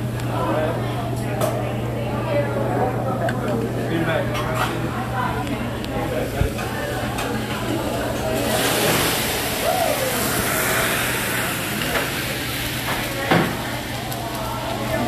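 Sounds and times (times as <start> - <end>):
food sizzling on griddle: 7.8 - 15.0
fire flare-up hiss: 8.4 - 14.8.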